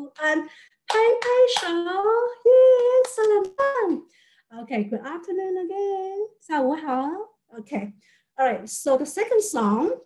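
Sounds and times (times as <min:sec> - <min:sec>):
woman singing unaccompanied: 0:00.0 - 0:03.7.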